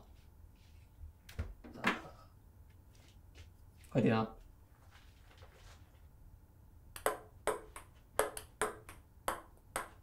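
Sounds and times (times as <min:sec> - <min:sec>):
ping-pong ball pinging: 0:07.0 - 0:10.0.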